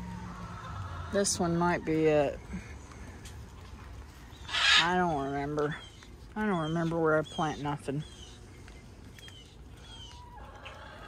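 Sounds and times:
chickens clucking: 0:00.0 - 0:02.4, 0:08.4 - 0:11.0.

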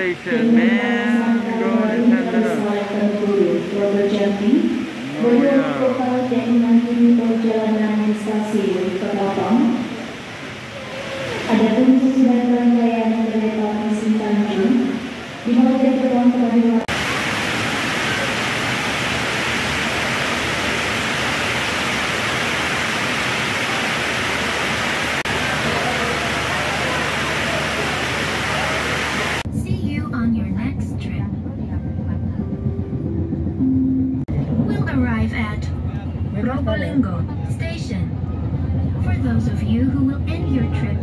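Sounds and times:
voices: 0:00.0 - 0:17.1, 0:25.2 - 0:32.7, 0:34.6 - 0:41.0
crowd and train rushing noise: 0:00.0 - 0:41.0
train carriage rumble: 0:00.0 - 0:41.0.

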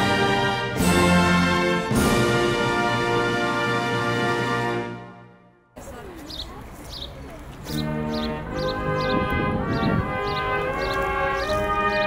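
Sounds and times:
brass band playing slow chords: 0:00.0 - 0:05.7, 0:07.6 - 0:12.0.

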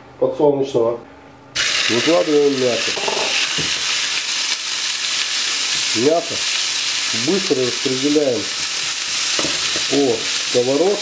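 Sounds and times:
meat sizzling in a frying pan: 0:01.6 - 0:11.0.

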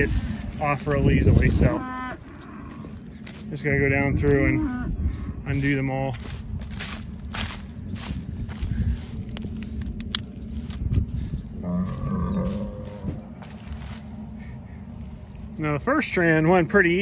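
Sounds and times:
footsteps crunching through corn stalks: 0:00.0 - 0:04.6, 0:05.5 - 0:17.0
cow mooing: 0:01.6 - 0:03.0, 0:11.6 - 0:13.2.

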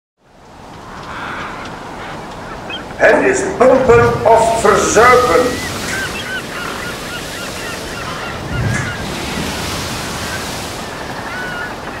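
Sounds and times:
wind: 0:00.2 - 0:12.0
surf: 0:00.4 - 0:12.0
gulls calling: 0:00.5 - 0:12.0
low rush: 0:03.0 - 0:11.3.

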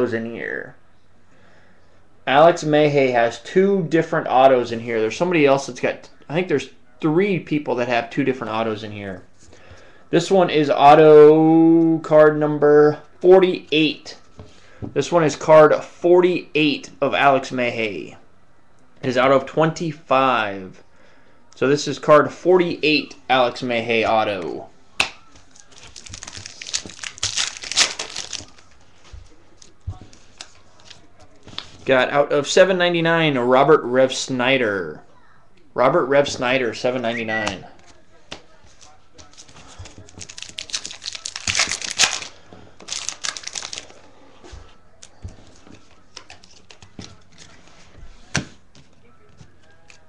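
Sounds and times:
foil wrapper tearing and crinkling: 0:25.7 - 0:28.6, 0:40.0 - 0:44.0.

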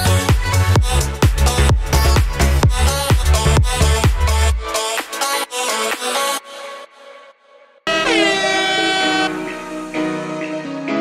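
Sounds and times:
background music: 0:00.0 - 0:11.0
loud horn-like blast: 0:07.9 - 0:09.8.

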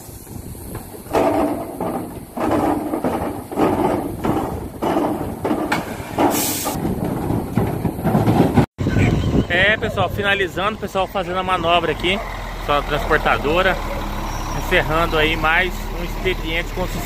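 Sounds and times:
metal trailer rattling and clanking: 0:00.4 - 0:17.0
short hiss: 0:06.3 - 0:06.8.

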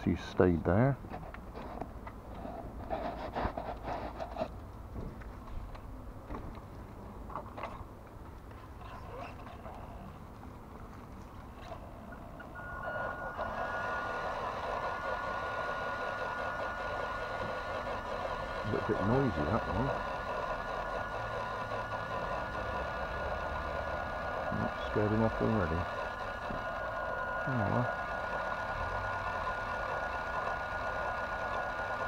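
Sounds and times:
electric motor and gearbox whining: 0:11.6 - 0:32.0
high steady tone: 0:11.8 - 0:32.0.

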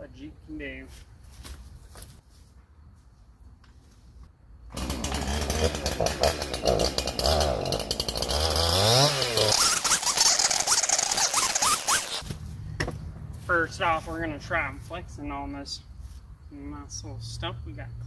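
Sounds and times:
chainsaw revving and cutting: 0:04.7 - 0:12.2.

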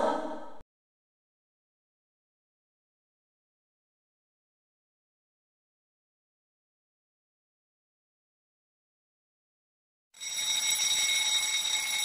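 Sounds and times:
high-pitched timer alarm ringing: 0:10.2 - 0:12.0.

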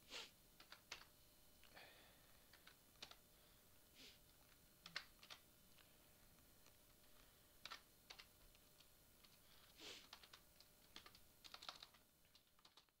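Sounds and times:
typing on computer keyboard: 0:00.6 - 0:01.1, 0:02.5 - 0:03.2, 0:04.4 - 0:05.4, 0:07.1 - 0:13.0.

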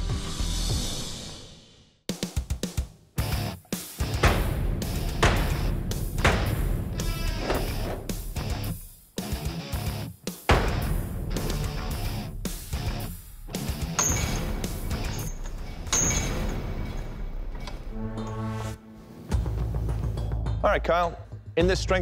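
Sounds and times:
hard-driving rock music: 0:02.2 - 0:17.0
metal weapon piercing sheet metal: 0:04.2 - 0:08.4, 0:13.8 - 0:17.2
metal striking heavy chain: 0:04.2 - 0:08.6, 0:13.6 - 0:17.6.

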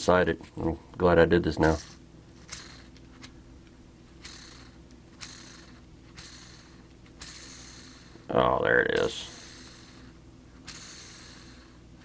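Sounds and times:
ball bearing whirring: 0:01.3 - 0:12.0.

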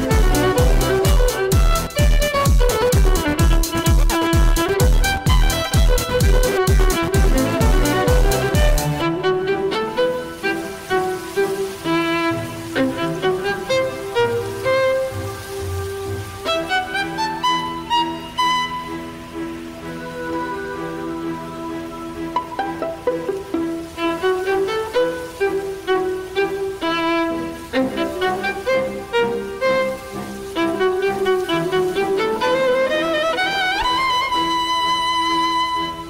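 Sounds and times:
karaoke backing track: 0:00.0 - 0:10.0
solo violin melody: 0:00.0 - 0:36.0.

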